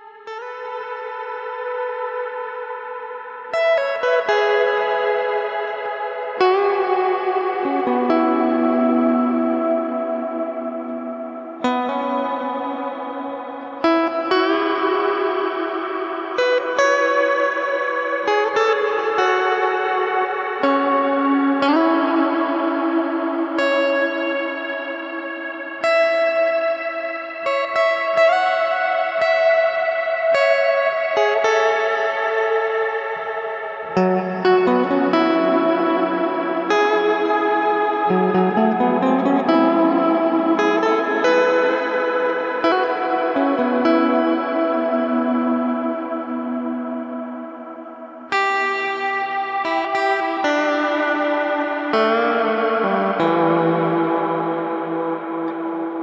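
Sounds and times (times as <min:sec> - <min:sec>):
electric guitar with reverb: 0:00.0 - 0:56.0.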